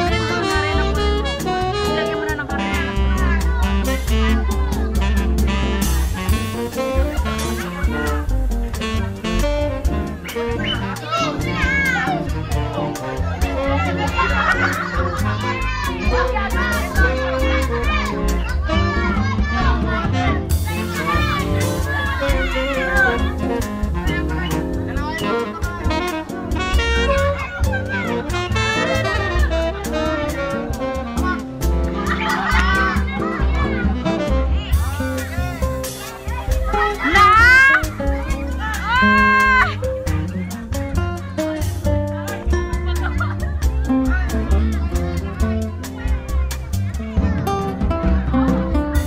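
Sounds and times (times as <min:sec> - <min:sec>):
children shouting and squealing: 0:00.0 - 0:49.0
music with steady beat: 0:00.0 - 0:49.0.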